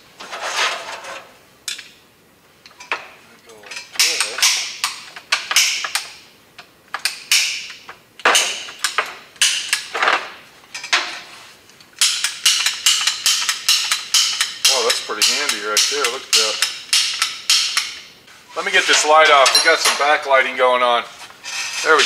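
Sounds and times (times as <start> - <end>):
metal parts clicking and clinking: 11.8 - 18.1, 19.4 - 20.0.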